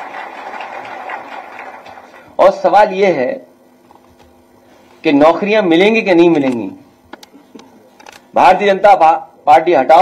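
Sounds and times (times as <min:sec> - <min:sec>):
small group applauding: 0:00.0 - 0:02.4.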